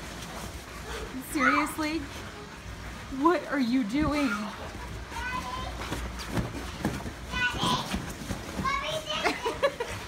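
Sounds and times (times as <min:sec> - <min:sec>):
woman laughing: 0:09.2 - 0:10.0.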